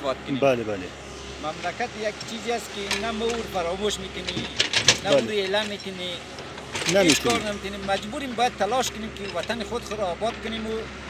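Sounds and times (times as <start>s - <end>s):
man speaking: 0.0s - 6.2s, 6.8s - 10.9s.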